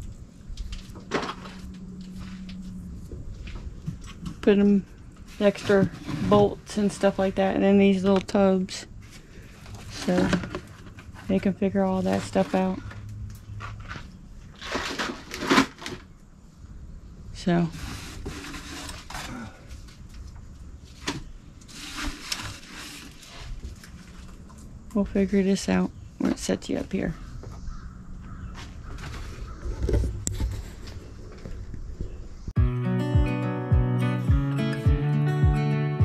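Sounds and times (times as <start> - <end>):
hardware and plastic tubs clattering: 0.6 - 2.6, 3.5 - 16.2
strummed acoustic guitar music: 32.6 - 36.0.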